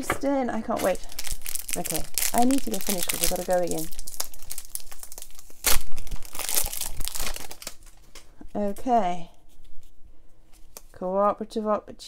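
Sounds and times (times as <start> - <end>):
plastic packaging crinkling: 0.6 - 11.0.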